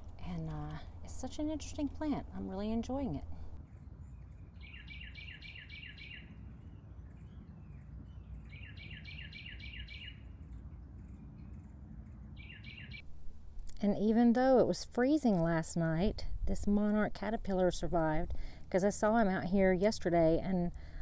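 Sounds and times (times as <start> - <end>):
songbird chirping: 0.0 - 13.1
low background rumble: 0.0 - 21.0.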